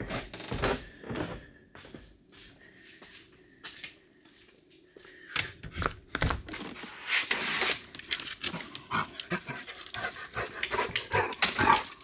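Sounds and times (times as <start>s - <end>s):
large dog panting: 9.0s - 11.9s.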